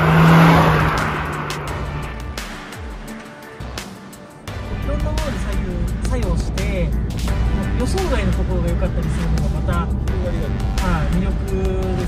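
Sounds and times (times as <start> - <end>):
background music: 0.0 - 12.0
car engine and exhaust: 0.0 - 12.0.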